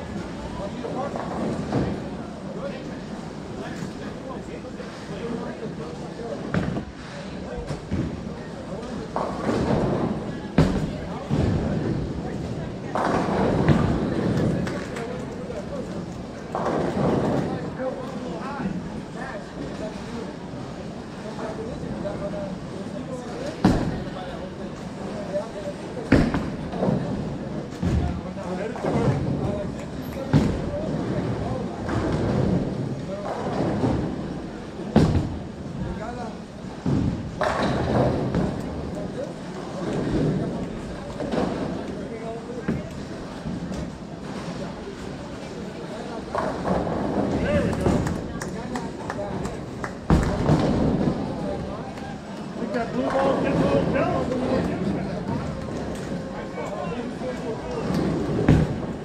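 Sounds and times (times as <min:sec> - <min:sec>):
background chatter: 0:00.0 - 0:59.0.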